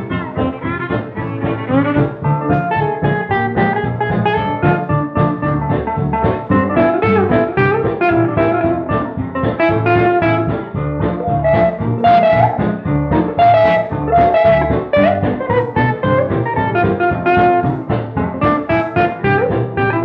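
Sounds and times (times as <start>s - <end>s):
country string band playing: 0.0s - 20.0s.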